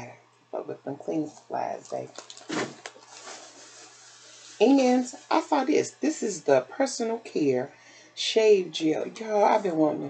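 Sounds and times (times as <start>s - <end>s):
shopping bag rustling: 1.8s - 5.8s.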